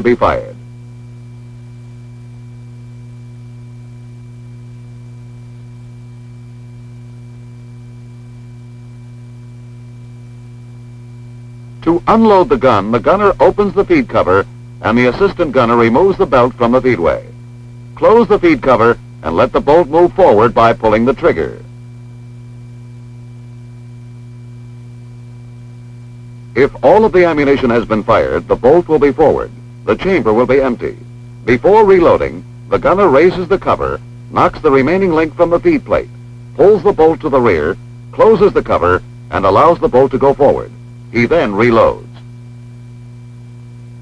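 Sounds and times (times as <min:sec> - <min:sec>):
electrical hum: 0:00.0 - 0:44.0
faint high steady tones: 0:11.8 - 0:21.8, 0:26.4 - 0:42.2.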